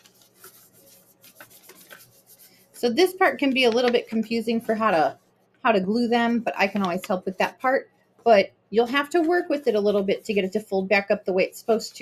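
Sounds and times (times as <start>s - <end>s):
paper rustling against tabletop: 0.0s - 5.2s.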